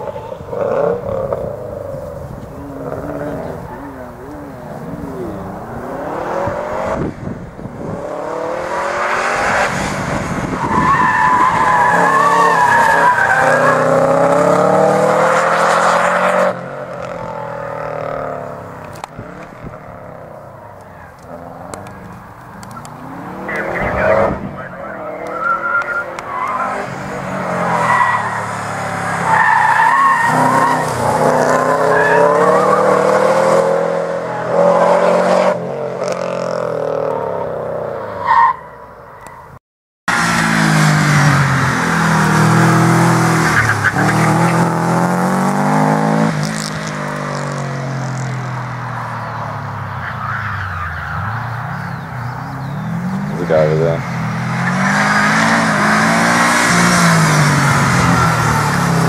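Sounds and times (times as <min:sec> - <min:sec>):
car engine revving: 0:00.0 - 0:38.2, 0:40.1 - 0:59.0
tyres squealing: 0:20.4 - 0:33.0.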